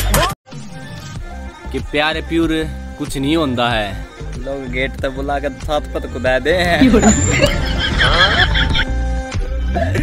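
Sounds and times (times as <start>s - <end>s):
background music: 0.0s - 10.0s
men laughing loudly: 6.8s - 9.0s.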